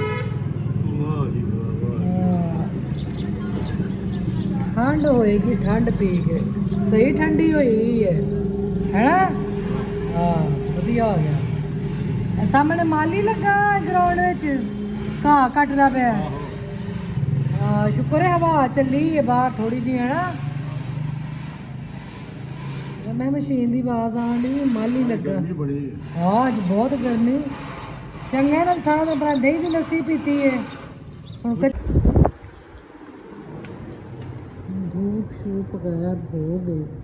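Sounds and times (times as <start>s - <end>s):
engine droning: 0.5s - 37.0s
faint voices: 1.0s - 11.6s.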